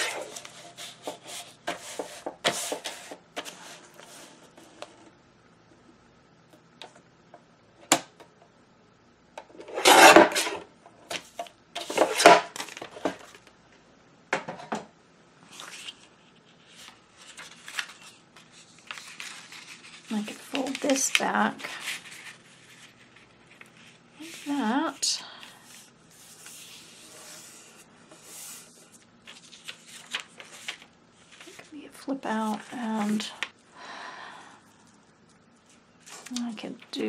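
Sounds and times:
paper rustling: 0:15.5 - 0:24.8, 0:25.4 - 0:31.8, 0:32.4 - 0:33.6, 0:34.7 - 0:36.9.

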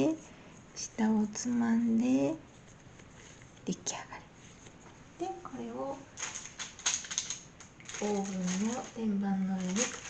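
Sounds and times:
light taps and crinkles: 0:02.4 - 0:03.7, 0:06.2 - 0:10.0.

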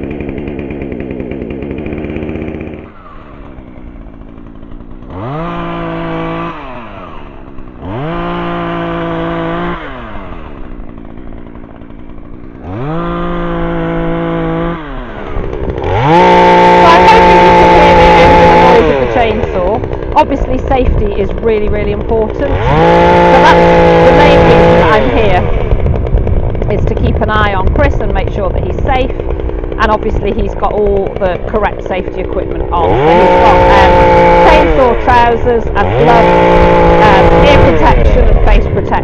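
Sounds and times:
chainsaw cutting wood: 0:00.0 - 0:39.0
chainsaw revving and idling: 0:00.0 - 0:39.0.

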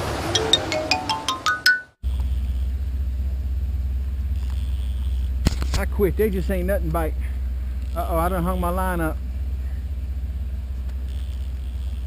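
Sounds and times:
rising chime-like notes: 0:00.2 - 0:02.0
steady low hum: 0:02.0 - 0:12.0
man speaking: 0:08.0 - 0:09.2.

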